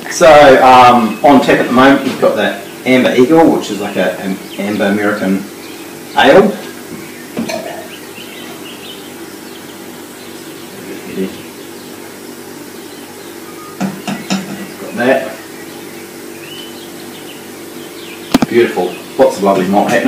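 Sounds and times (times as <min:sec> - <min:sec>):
steady low hum: 0:00.0 - 0:20.0
tap clicks and knocks: 0:18.3 - 0:18.5.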